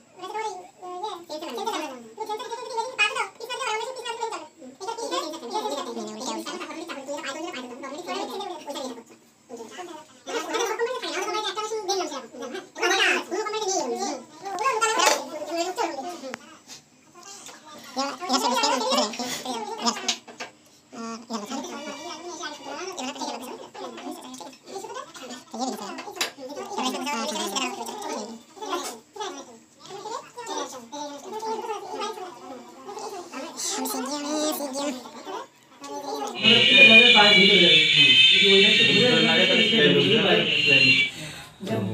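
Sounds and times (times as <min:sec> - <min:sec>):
people talking: 0:00.2 - 0:16.4, 0:35.9 - 0:41.9
person talking: 0:36.4 - 0:41.9.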